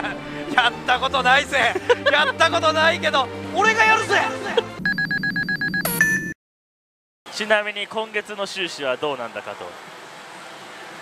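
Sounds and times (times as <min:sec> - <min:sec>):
rapid warbling beep: 0:04.8 - 0:06.3.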